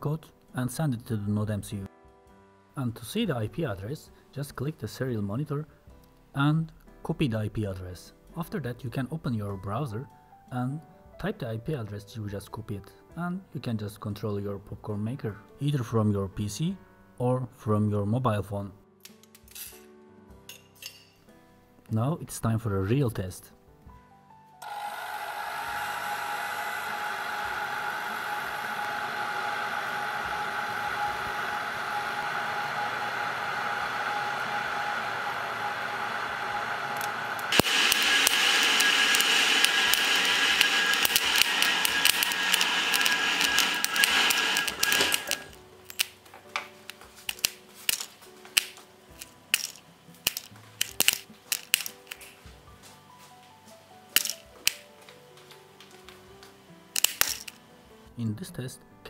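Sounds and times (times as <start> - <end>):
hair dryer blowing with whine: 24.6 - 45.6
popcorn kernels popping: 37.0 - 52.4, 54.2 - 54.9, 57.0 - 57.6.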